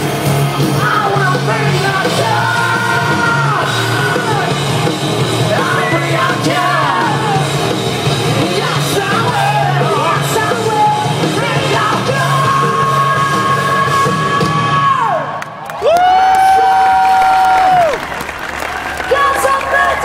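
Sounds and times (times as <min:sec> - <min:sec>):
metal band playing live: 0:00.0 - 0:15.2.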